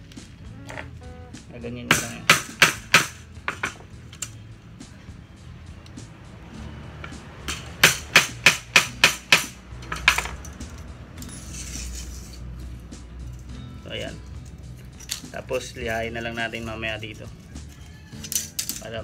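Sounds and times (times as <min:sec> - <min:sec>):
hammer striking on metal: 0:01.9 - 0:03.8, 0:07.4 - 0:10.4.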